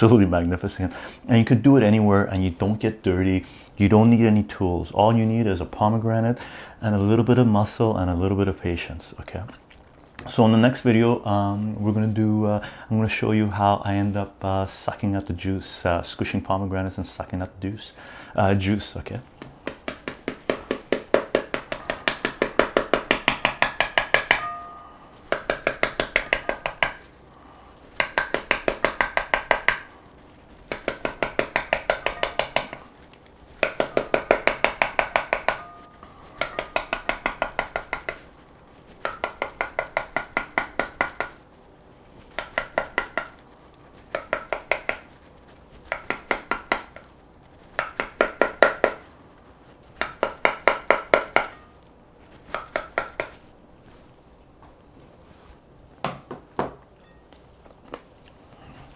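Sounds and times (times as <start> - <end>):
metal utensil tapping pomegranate rind: 19.6 - 27.1, 30.7 - 32.9, 33.5 - 38.2, 39.0 - 41.4, 57.0 - 57.3.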